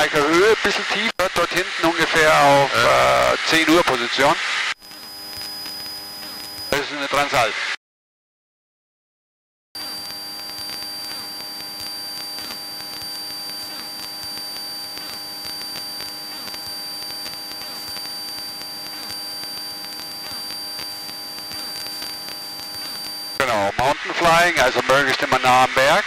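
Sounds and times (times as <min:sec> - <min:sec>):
high-pitched whine: 0:00.0 - 0:07.5, 0:09.8 - 0:26.0.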